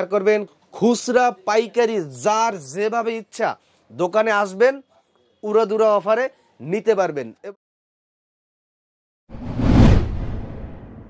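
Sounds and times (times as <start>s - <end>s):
whoosh sound effect: 9.3s - 11.0s
deep rumble: 9.4s - 11.0s.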